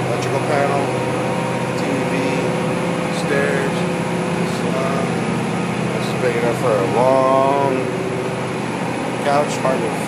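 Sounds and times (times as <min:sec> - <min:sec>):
diesel engines droning: 0:00.0 - 0:10.0.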